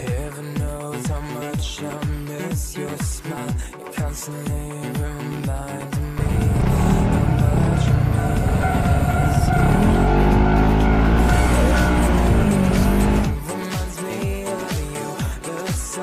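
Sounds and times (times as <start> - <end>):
dance music with a beat: 0.0 - 16.0
scooter engine accelerating: 6.2 - 13.4.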